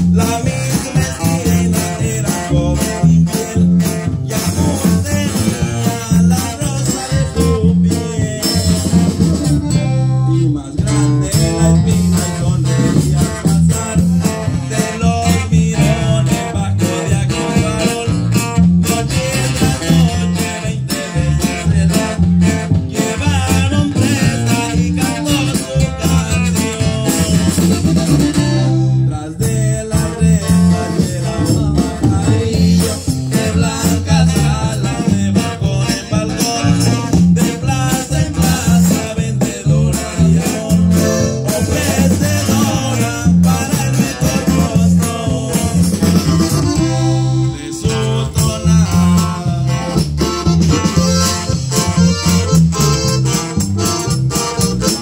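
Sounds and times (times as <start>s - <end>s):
live band through speakers: 0.0s - 55.0s
steady bass line: 0.0s - 55.0s.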